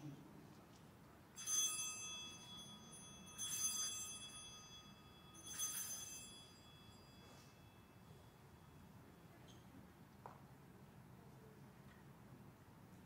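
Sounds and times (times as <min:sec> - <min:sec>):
altar bell ringing: 0:01.4 - 0:09.2.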